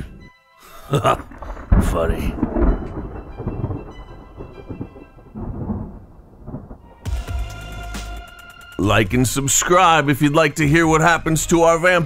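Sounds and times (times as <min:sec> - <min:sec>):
low rumbles: 0:00.8 - 0:10.1.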